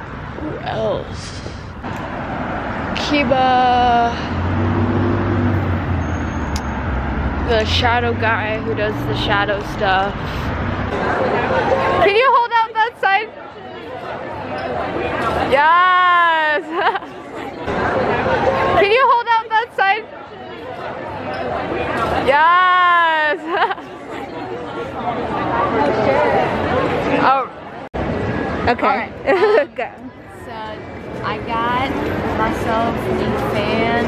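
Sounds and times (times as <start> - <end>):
road traffic rumble: 0.0 - 34.0
crowd chatter in a hall: 10.8 - 34.0.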